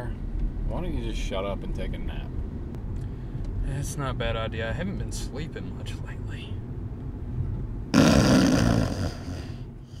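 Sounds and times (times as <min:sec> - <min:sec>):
loud snore: 0:07.9 - 0:10.0.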